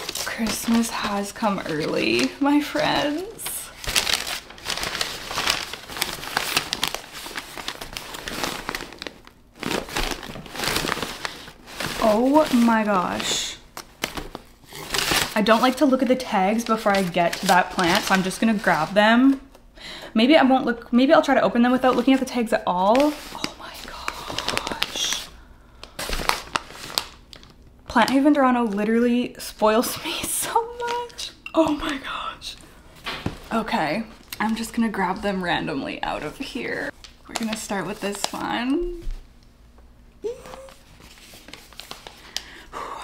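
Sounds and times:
packing paper crinkling: 0:00.0 - 0:19.5, 0:21.7 - 0:28.8, 0:36.2 - 0:39.2, 0:40.3 - 0:42.7.

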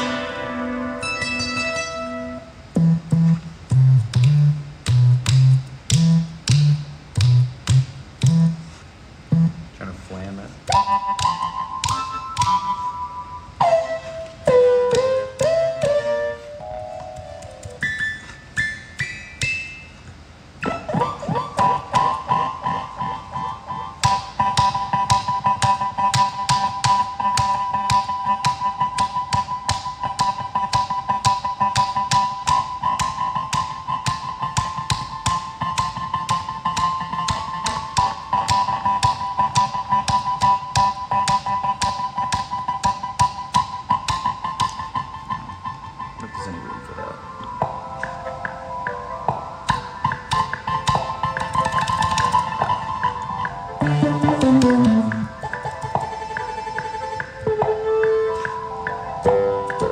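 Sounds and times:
long held synth tone: 0:00.0 - 0:03.4
electronic keyboard short notes: 0:00.0 - 0:07.5, 0:43.9 - 0:59.9
fast stream of sharp notes: 0:49.7 - 0:57.4.

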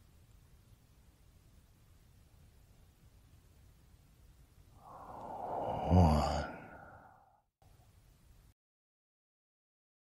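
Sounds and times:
faint room tone: 0:00.0 - 0:08.6
man sighing: 0:04.8 - 0:07.3.

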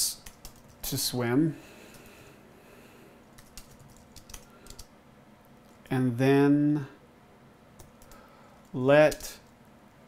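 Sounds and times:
keyboard typing: 0:00.2 - 0:00.9, 0:03.3 - 0:04.9, 0:07.8 - 0:08.2.

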